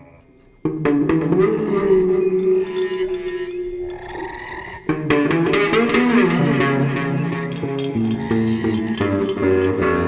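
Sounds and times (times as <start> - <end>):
electric guitar effects: 0.0 - 10.0.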